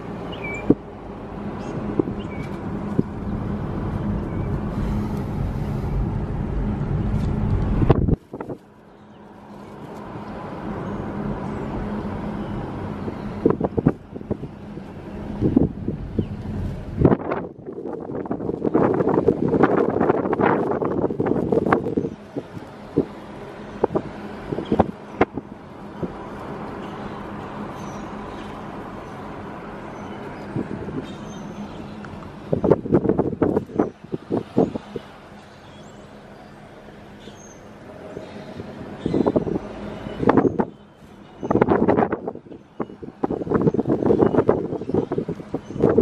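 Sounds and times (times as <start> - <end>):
road noise inside moving car: 0.0 - 46.0
wind on microphone: 0.4 - 8.7, 11.0 - 26.4, 30.0 - 36.0, 37.9 - 46.0.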